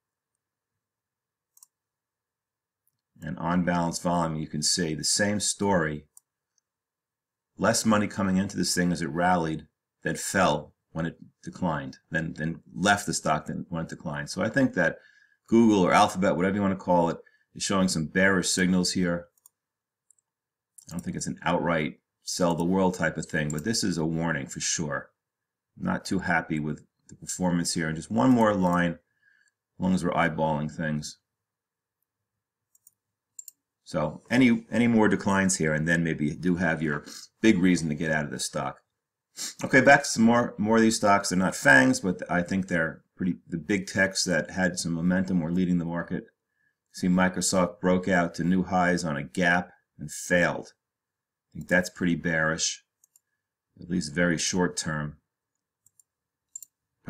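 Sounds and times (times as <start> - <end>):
faint computer mouse clicks: 32.7 - 33.6, 55.8 - 56.8.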